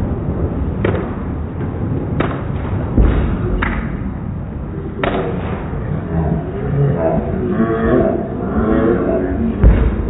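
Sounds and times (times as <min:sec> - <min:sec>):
heavy low thud: 0:02.9 - 0:03.8, 0:09.6 - 0:10.0
sharp knocks: 0:09.6 - 0:10.0.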